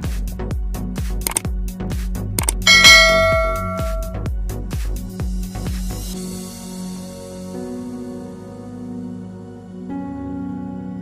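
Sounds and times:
loud bell-like ding: 2.6 - 4.2.

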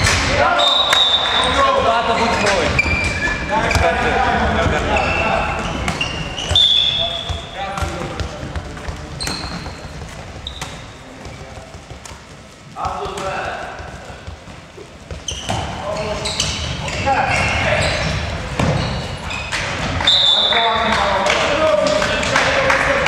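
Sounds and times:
sneakers squeaking: 0.0 - 21.9
ball bouncing on hall floor: 0.0 - 23.0.

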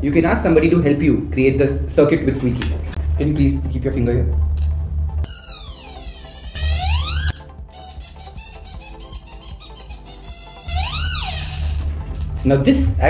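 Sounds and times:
electronic toy reedy sliding tone: 5.3 - 11.9.

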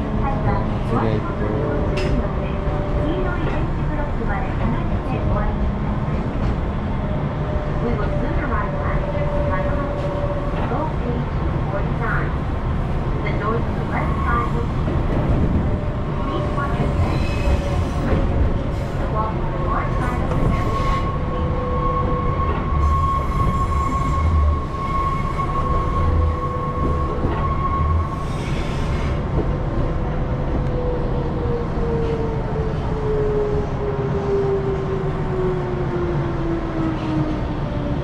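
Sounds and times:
train rumbling on rails: 0.0 - 38.0.

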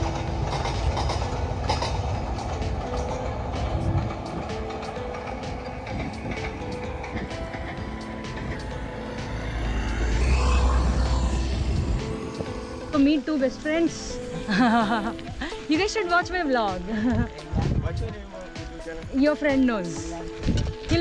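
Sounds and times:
background music melody: 0.0 - 21.0
passenger train rumbling past: 0.0 - 21.0.

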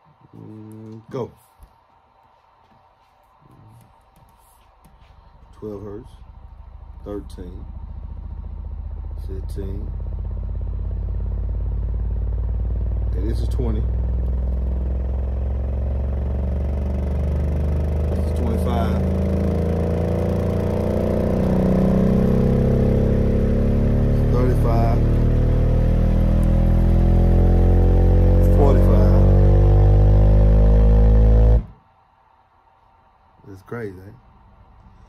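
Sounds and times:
subwoofer bass tone sweep: 5.4 - 31.8.

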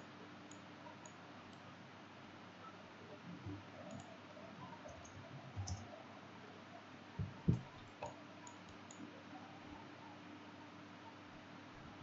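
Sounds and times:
computer mouse clicks: 0.5 - 1.6, 3.9 - 4.1, 4.9 - 5.8, 7.5 - 9.1.

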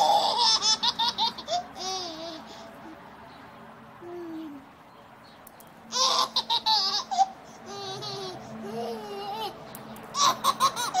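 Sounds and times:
child vocal sound: 4.0 - 4.7, 7.7 - 9.6
child giggling: 6.0 - 9.6, 10.2 - 11.0.

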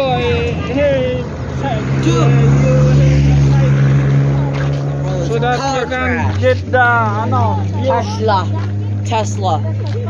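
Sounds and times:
vehicle engine running: 0.0 - 10.0
voices: 0.0 - 10.0.

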